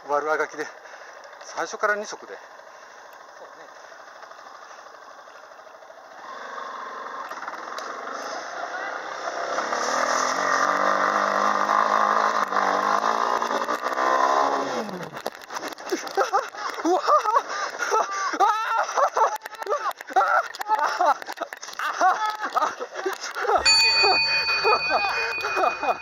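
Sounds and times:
motorcycle engine under throttle: 0:00.0 - 0:17.9.

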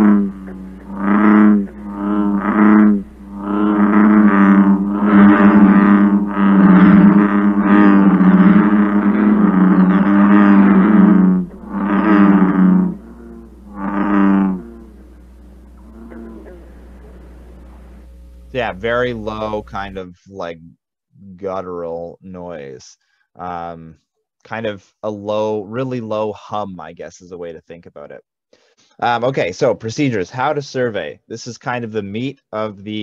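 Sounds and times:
bullfrog calls: 0:00.0 - 0:19.9.

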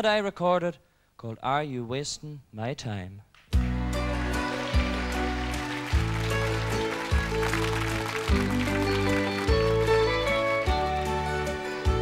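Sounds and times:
country band playing: 0:03.6 - 0:12.0.

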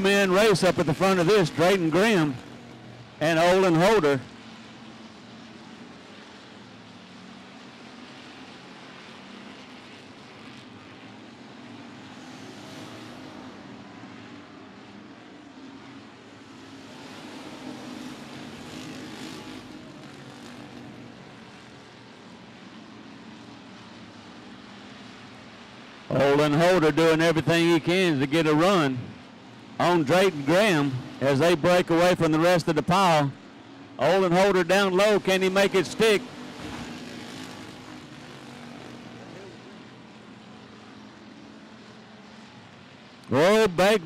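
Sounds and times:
race car engines running hard: 0:00.0 - 0:44.0.

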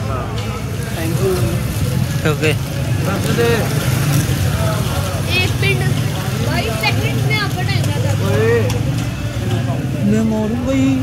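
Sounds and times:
scattered voices: 0:00.0 - 0:11.0.

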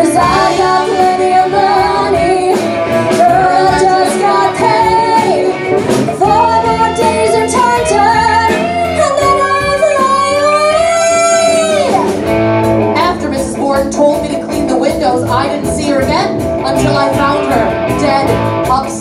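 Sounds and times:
women singing: 0:00.0 - 0:12.1
live rock band: 0:00.0 - 0:19.0.

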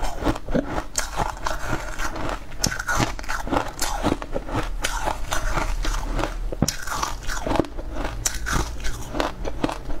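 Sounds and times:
chewing crunchy ice: 0:00.0 - 0:10.0.

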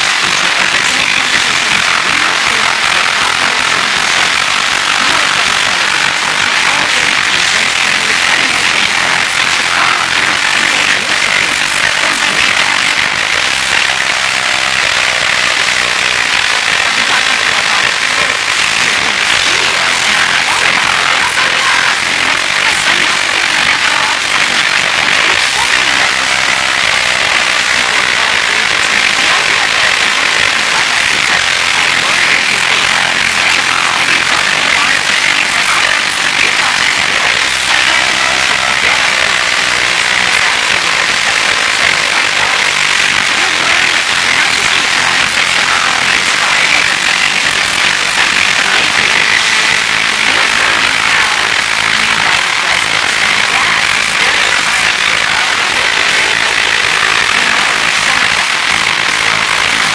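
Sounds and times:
loud steady tape hiss: 0:00.0 - 0:59.9
person speaking: 0:00.0 - 0:59.9.

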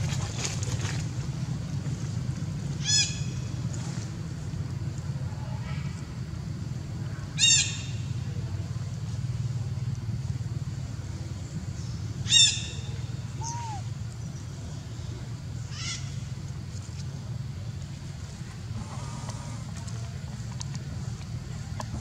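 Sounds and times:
low background hum: 0:00.0 - 0:22.0
high-pitched animal calls: 0:13.4 - 0:13.9.

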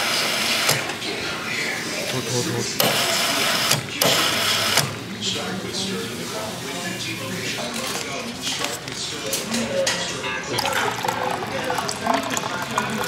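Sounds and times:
cola fizzing: 0:10.4 - 0:13.0
soda fountain pouring: 0:10.4 - 0:13.0.

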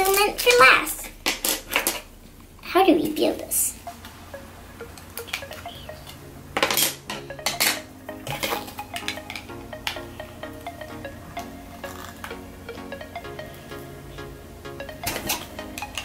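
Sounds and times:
background music: 0:03.8 - 0:16.0.

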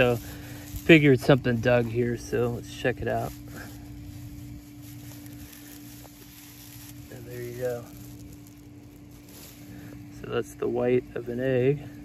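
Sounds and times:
fingers digging through soil: 0:00.0 - 0:12.0
steady low hum: 0:00.0 - 0:12.0.

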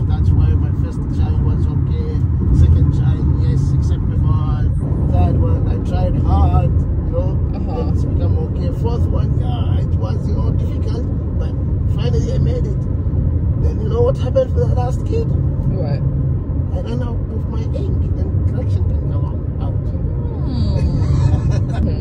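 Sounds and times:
man talking: 0:00.0 - 0:12.8, 0:13.6 - 0:15.4, 0:16.7 - 0:20.2
car driving rumble from inside: 0:00.0 - 0:22.0.

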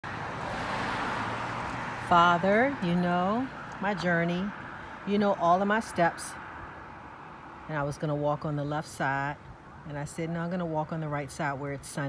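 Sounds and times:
car passing: 0:00.0 - 0:12.0.

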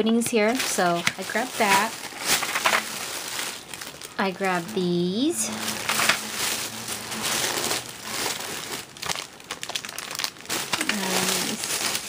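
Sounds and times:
plastic packaging crinkling: 0:00.1 - 0:12.0.

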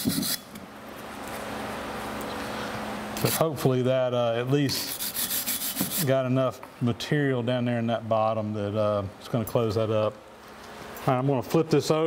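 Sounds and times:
low background hum: 0:00.0 - 0:12.0
wire brush scrubbing metal: 0:04.7 - 0:06.1.

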